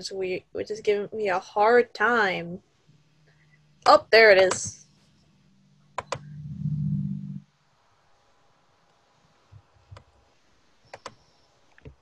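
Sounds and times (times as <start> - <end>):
low steady hum: 0.0 - 8.4.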